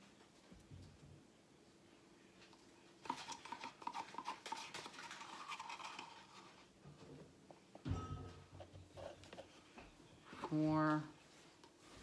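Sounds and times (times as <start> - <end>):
stir stick scraping plastic cup: 3.0 - 6.6
thump: 7.8 - 8.4.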